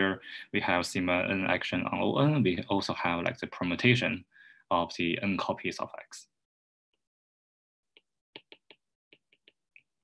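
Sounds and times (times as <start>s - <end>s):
stylus tapping on tablet screen: 8.0s - 9.9s.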